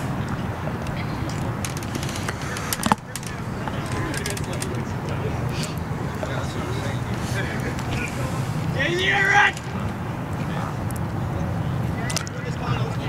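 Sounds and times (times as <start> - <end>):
distant players' voices: 0.0 - 13.0.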